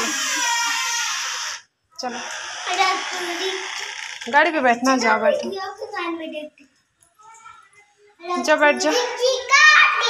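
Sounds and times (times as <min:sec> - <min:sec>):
child's high-pitched cry: 0:00.0 - 0:01.5.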